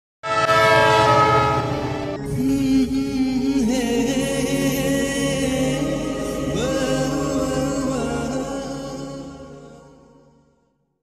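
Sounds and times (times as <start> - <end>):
train horn blast: 0.2 - 2.2.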